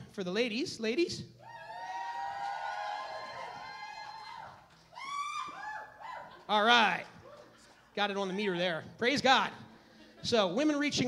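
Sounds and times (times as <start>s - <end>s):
women whooping and cheering: 1.4s - 6.5s.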